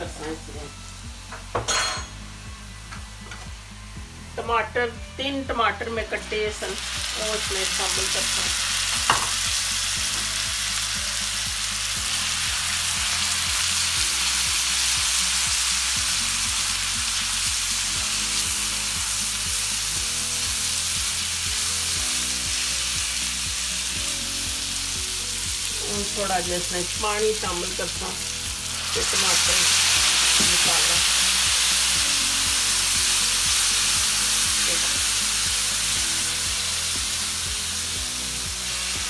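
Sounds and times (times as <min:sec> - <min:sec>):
vegetables sizzling in hot oil: 0:00.0 - 0:03.9, 0:05.6 - 0:39.0.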